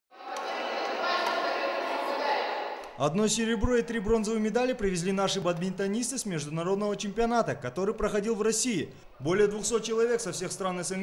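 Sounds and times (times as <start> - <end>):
children chattering and calling: 0.1 - 3.0.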